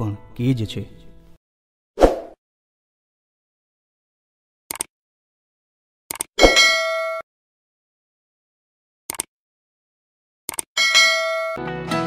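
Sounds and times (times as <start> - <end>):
notification bell ding: 10.8 - 11.6.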